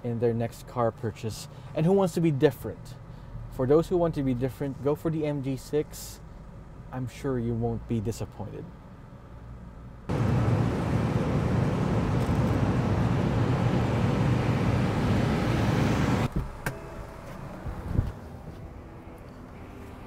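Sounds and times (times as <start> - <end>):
car engine and road noise: 0.4 - 20.0.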